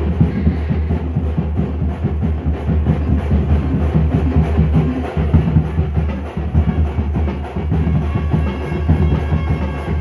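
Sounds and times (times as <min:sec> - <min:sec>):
quick drum strokes: 0:00.0 - 0:10.0.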